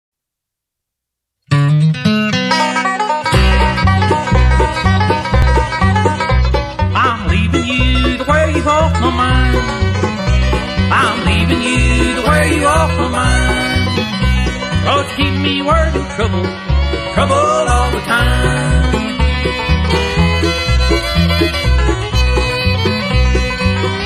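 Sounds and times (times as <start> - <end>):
bluegrass band playing: 1.6 - 24.0
bass steady beat: 3.4 - 24.0.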